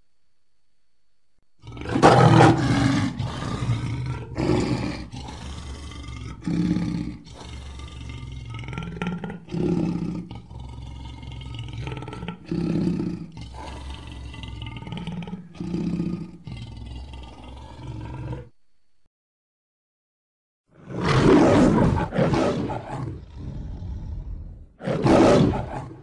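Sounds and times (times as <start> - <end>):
dinosaur roars: 1.6 - 18.5, 20.8 - 26.0.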